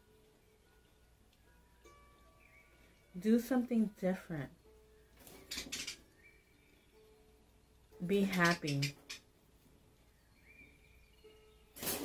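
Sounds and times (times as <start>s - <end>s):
person speaking: 8.0s - 9.0s.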